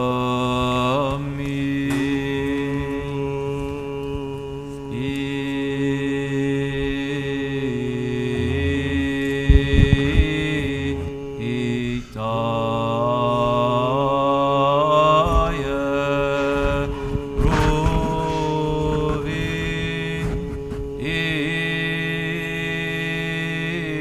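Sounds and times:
low drone: 0.0s - 24.0s
voices chanting long notes: 0.0s - 24.0s.

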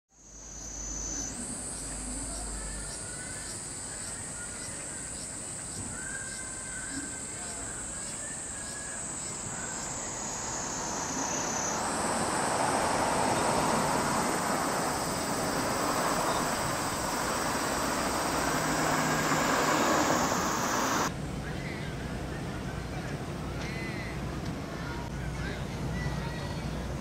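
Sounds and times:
cicadas droning: 0.1s - 21.1s
road traffic: 8.6s - 21.4s.

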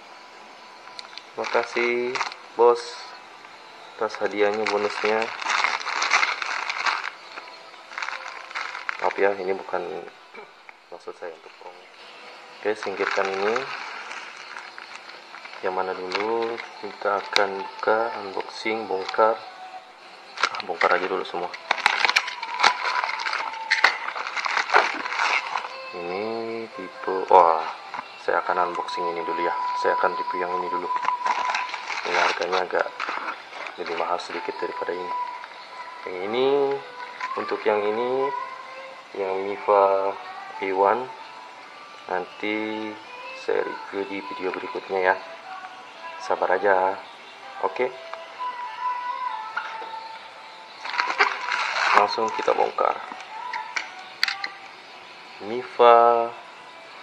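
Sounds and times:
plastic packaging crinkling: 0.9s - 3.2s, 4.0s - 10.1s, 12.6s - 19.4s, 20.3s - 37.6s, 50.7s - 54.7s.

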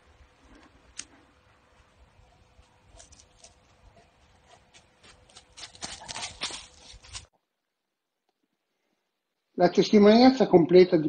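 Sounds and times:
dog paws crunching dry leaves: 2.6s - 7.3s.

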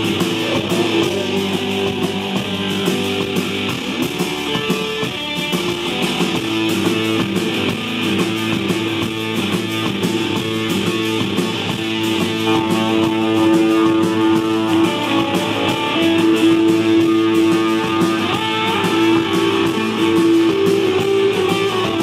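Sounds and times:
electric guitar: 0.0s - 22.0s
fast drum beat: 0.0s - 22.0s.

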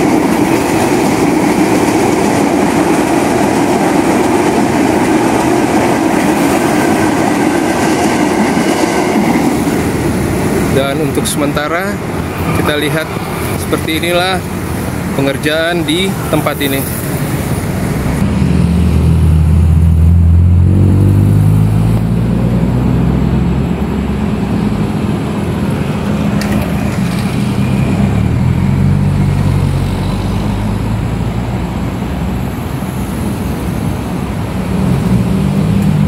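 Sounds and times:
highway traffic passing: 0.0s - 36.0s.

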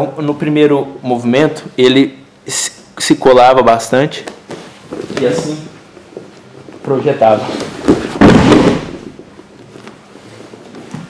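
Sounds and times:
body thudding onto padded mat: 7.7s - 9.2s.

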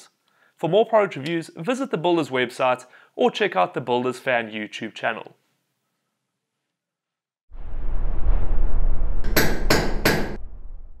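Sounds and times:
low rumble: 7.5s - 11.0s
sharp hammer-like strikes: 9.2s - 10.4s.

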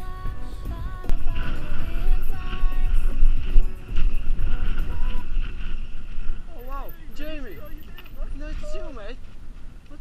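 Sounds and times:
background music: 0.0s - 5.6s
wind buffeting: 0.0s - 10.0s
bike tyres rumbling on rough ground: 0.2s - 10.0s.

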